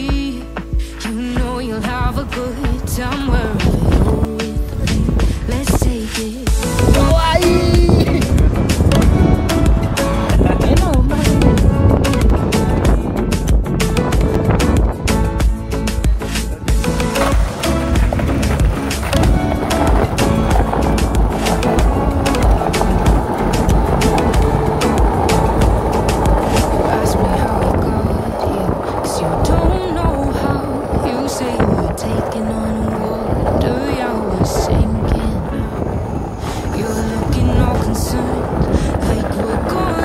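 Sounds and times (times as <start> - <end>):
background music: 0.0 - 40.0
skateboard wheels rolling on tiles: 0.0 - 40.0.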